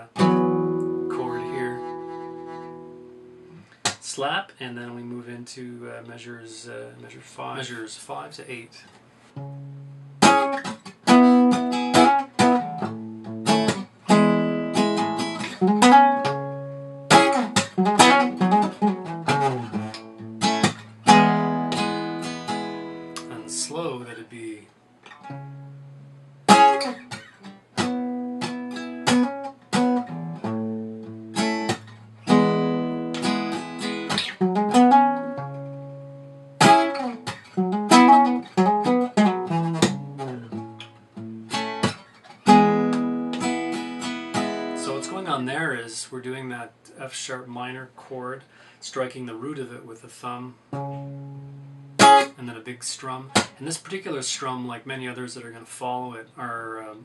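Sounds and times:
acoustic guitar fingerstyle: 0.0 - 4.2, 8.8 - 45.9, 50.6 - 55.7
thumb slaps on guitar strings: 3.8 - 4.0, 42.9 - 43.5.

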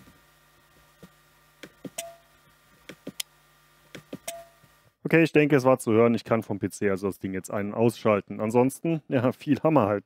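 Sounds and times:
brief ringing tone: 4.3 - 4.6.

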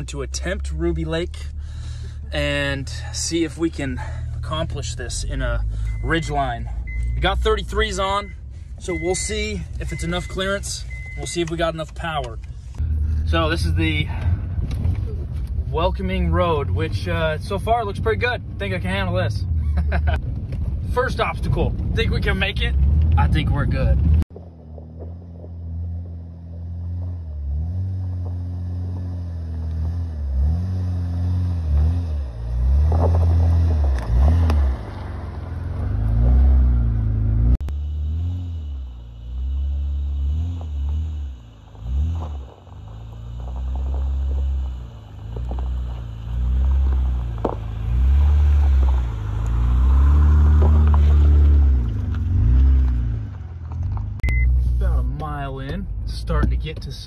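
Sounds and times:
truck engine revving: 20.9 - 57.0.

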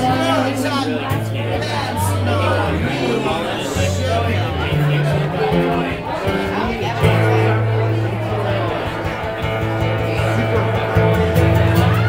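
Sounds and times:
acoustic guitar music: 0.0 - 12.0.

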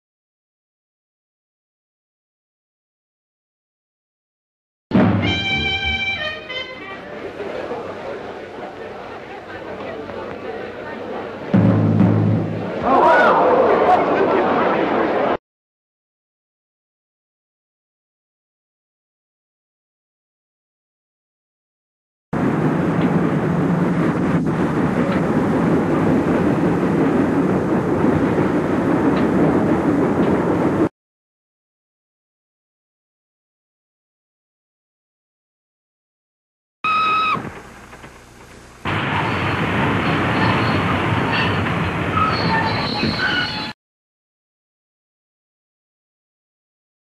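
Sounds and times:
dance band playing swing music: 4.9 - 7.4
train rumbling and rattling: 22.4 - 30.9, 37.4 - 43.7.

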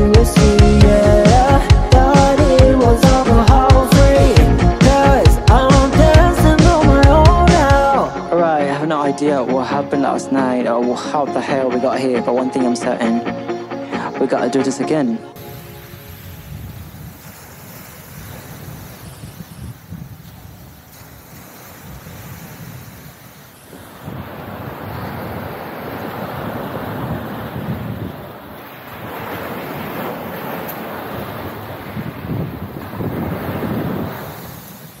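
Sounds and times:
surf on a pebble beach: 15.4 - 35.0
wind on microphone: 15.4 - 35.0.

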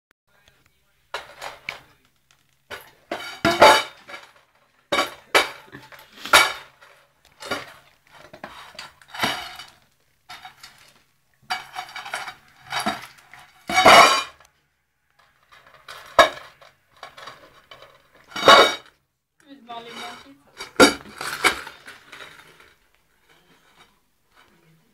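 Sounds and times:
kibble rattling in metal bowl: 1.1 - 2.1, 2.7 - 14.4, 15.3 - 18.9, 19.7 - 23.9.

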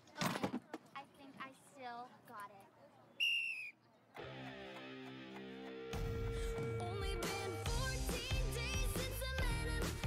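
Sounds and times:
whistle blast: 3.2 - 3.8
background music with held notes: 4.2 - 10.0.

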